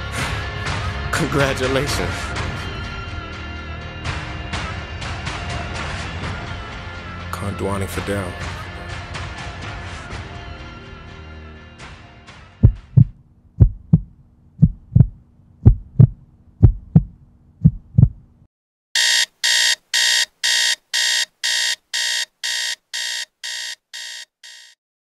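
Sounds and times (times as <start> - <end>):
music: 0.0 - 13.0
heartbeat thumps: 12.6 - 18.4
digital alarm clock beeping: 19.0 - 24.8.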